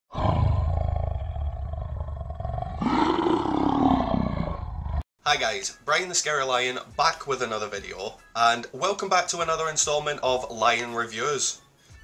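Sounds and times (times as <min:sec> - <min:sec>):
lion roaring: 0:00.1 - 0:05.0.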